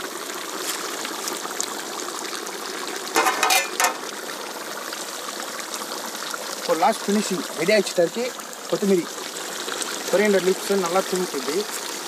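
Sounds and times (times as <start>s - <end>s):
curry bubbling and sizzling: 0.0s - 12.0s
wood fire crackling: 0.0s - 12.0s.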